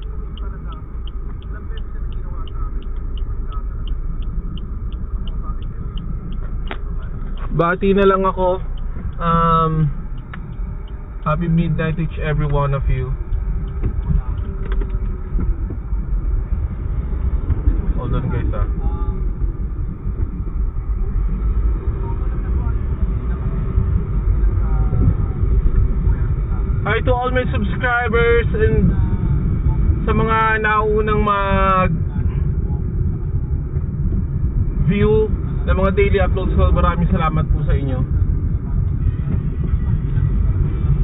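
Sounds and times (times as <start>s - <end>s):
car engine and tyres rumbling: 0.0s - 41.0s.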